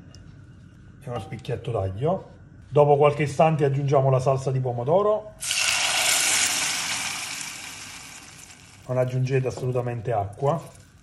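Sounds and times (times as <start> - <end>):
sauce sizzling in a saucepan: 5.4 - 9.3
sauce pouring into hot oil: 5.4 - 9.5.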